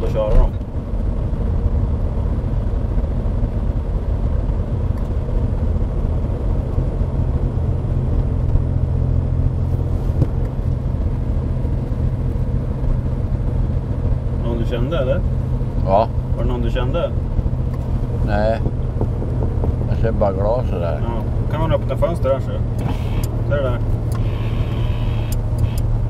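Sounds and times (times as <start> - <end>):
car engine droning at low revs: 0.0 - 26.0
road rumble: 0.0 - 26.0.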